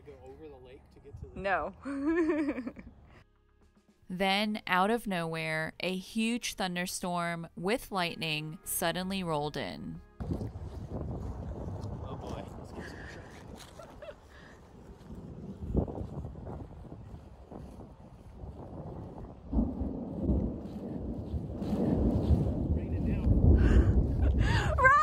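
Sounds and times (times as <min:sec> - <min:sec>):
gusty wind buffeting microphone: 0:10.2 - 0:25.0.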